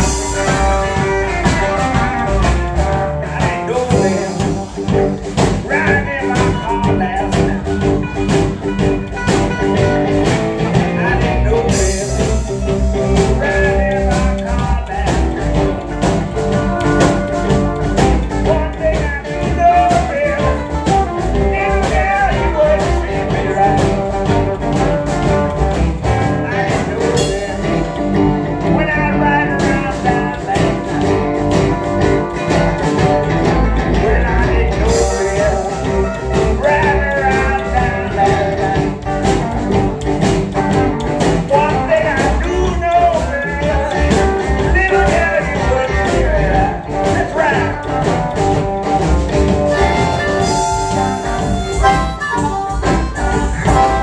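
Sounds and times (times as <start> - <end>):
drum kit beat: 0.0 - 54.0
electric guitar: 0.0 - 54.0
upright bass: 0.0 - 54.0.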